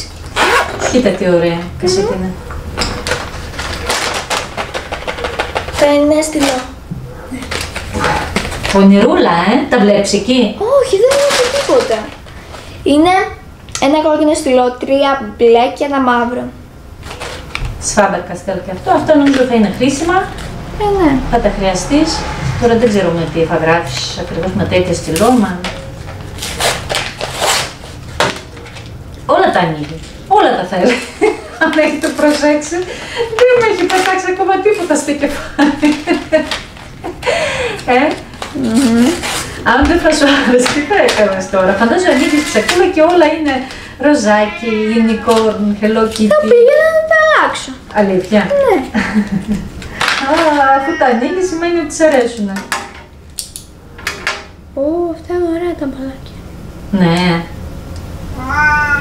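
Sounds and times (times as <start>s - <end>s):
packaging rustling and crinkling: 3.0s - 6.7s, 7.3s - 8.9s, 10.9s - 12.7s, 17.0s - 17.7s, 25.7s - 29.0s.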